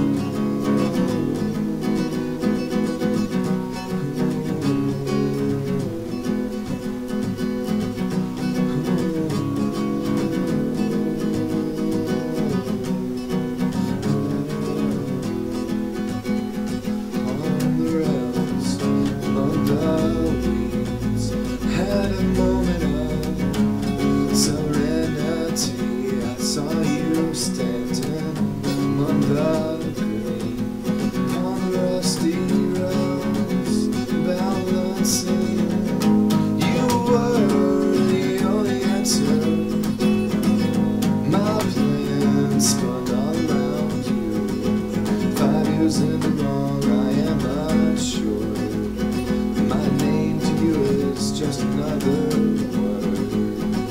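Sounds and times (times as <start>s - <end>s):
acoustic guitar strumming: 0.0s - 53.9s.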